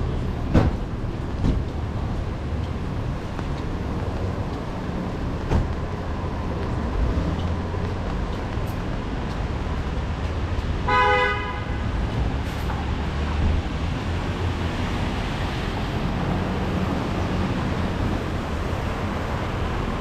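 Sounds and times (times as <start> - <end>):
traffic on wet street: 0.0 - 20.0
car horn toot: 10.8 - 11.8.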